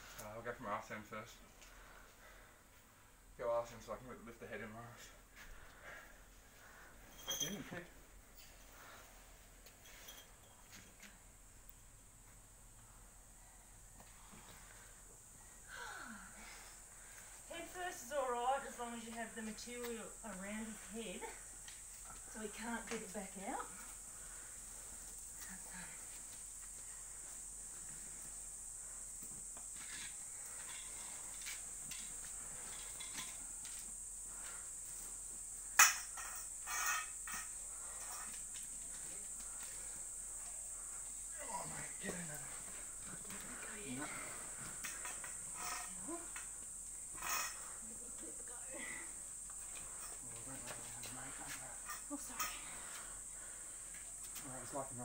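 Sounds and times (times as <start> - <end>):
high-pitched insect buzz: 15.6 - 55.0.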